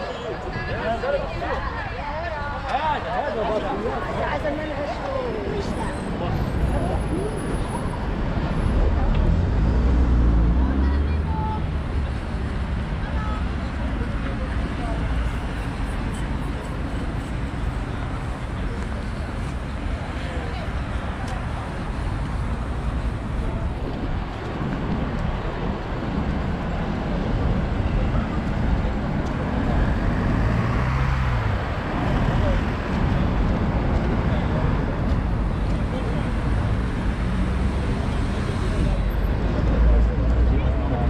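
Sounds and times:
chatter of people: 0.0 - 41.0
road traffic: 0.0 - 41.0
vehicle passing close: 29.4 - 35.1.

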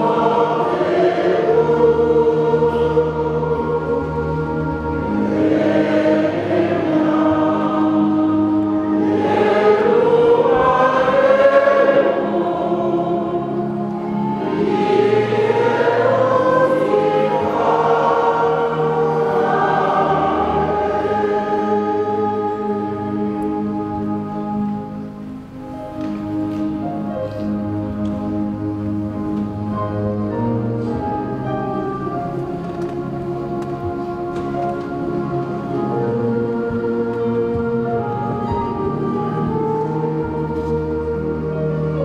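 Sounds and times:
group singing a hymn: 0.0 - 24.9, 31.1 - 42.0
long held instrumental chords: 0.0 - 42.0.

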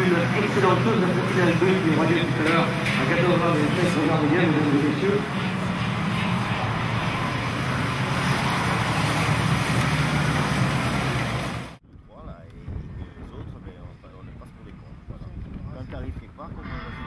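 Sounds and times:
kart engines buzzing: 0.0 - 11.8.

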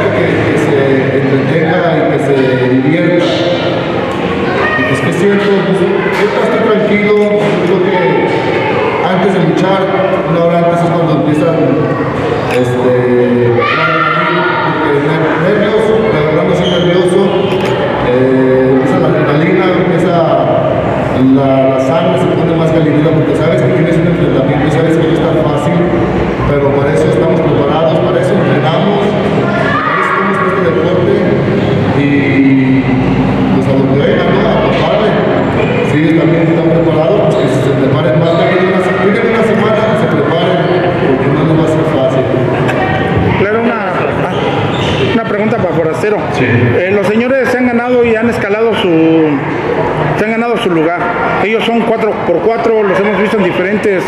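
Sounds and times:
man talking into a microphone: 0.0 - 54.0.

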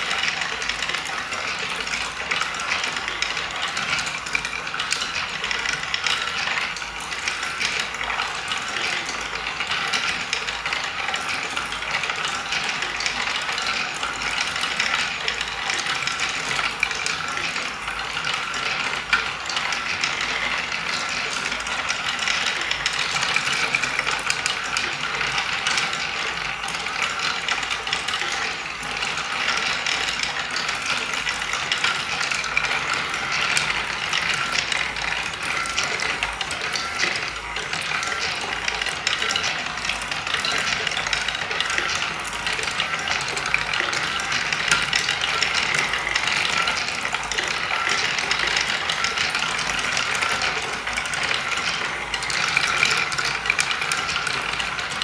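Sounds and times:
balls rolling on wooden tracks: 0.0 - 55.0
wooden parts clicking: 0.0 - 55.0.

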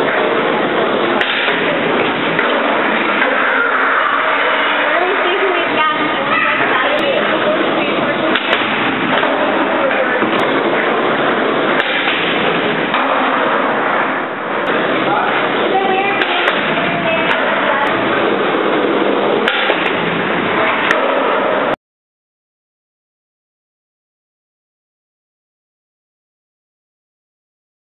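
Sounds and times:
indistinct voices: 0.0 - 12.0, 12.6 - 19.7
skateboard wheels rolling on concrete: 0.0 - 21.8.

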